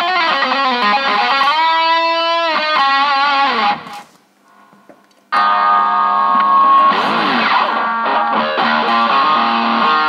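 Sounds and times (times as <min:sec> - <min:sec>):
distorted electric guitar: 0:00.0 - 0:10.0.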